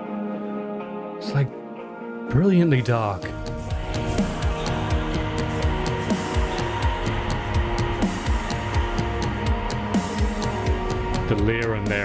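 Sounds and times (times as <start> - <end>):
electric guitars: 0.0 - 12.0
driving drum beat: 3.6 - 12.0.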